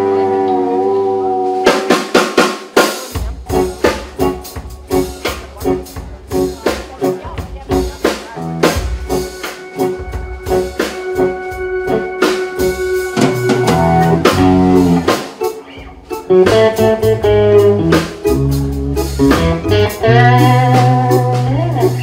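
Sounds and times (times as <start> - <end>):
electric bass: 0.0 - 2.3, 3.1 - 22.0
drum kit: 0.0 - 22.0
electric guitar: 0.0 - 22.0
keyboard: 0.0 - 22.0.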